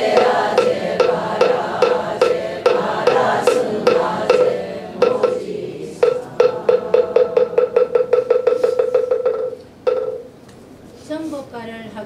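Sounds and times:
wooden fish knocks: 0:00.0 - 0:10.3.

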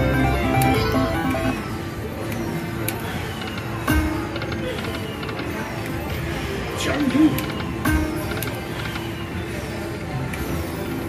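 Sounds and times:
slot machine tune and chimes: 0:00.0 - 0:02.6.

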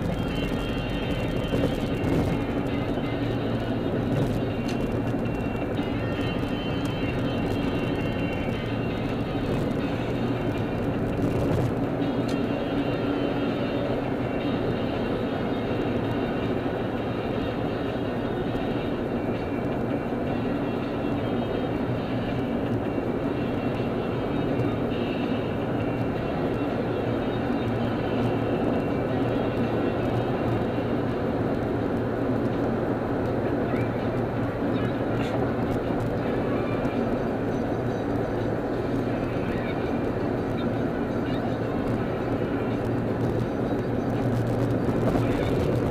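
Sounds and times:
car road and engine noise: 0:00.0 - 0:45.9
faint music: 0:00.0 - 0:45.9.

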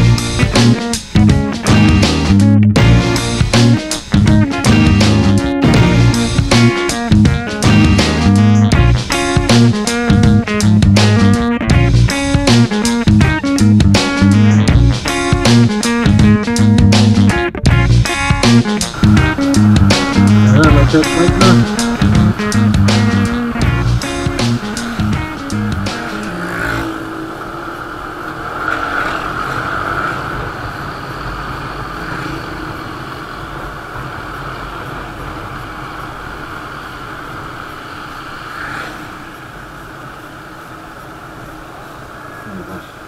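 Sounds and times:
background music with guitar and bass: 0:00.0 - 0:27.0
motorcycle engine running: 0:00.0 - 0:37.8
wind noise: 0:00.0 - 0:43.0.

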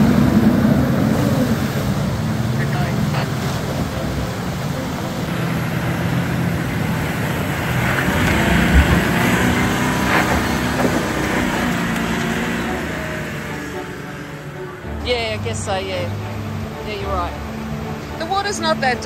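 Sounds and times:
truck engine running under load: 0:00.0 - 0:19.0
water rushing and splashing: 0:00.0 - 0:19.0.

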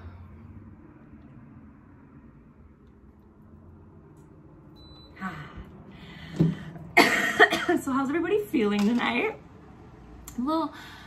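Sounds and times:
air conditioner hum and hiss: 0:00.0 - 0:11.0.

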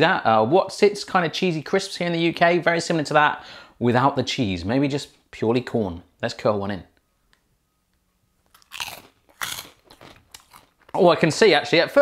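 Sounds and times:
corn snack crunching: 0:08.4 - 0:11.4.

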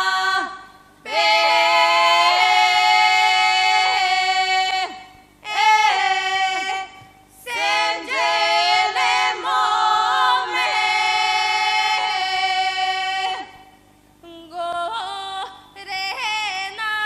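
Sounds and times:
women singing together unaccompanied: 0:00.0 - 0:17.0.

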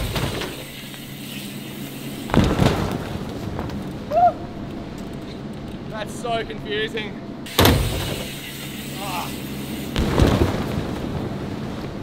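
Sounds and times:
bike landing on airbag thump: 0:00.0 - 0:00.7, 0:02.2 - 0:03.9, 0:07.5 - 0:08.4, 0:09.9 - 0:12.0.

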